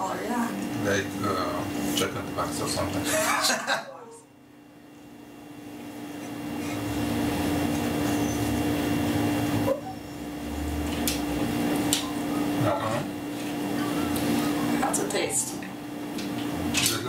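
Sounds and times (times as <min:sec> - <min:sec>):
room hum and hiss: 0:00.0 - 0:17.0.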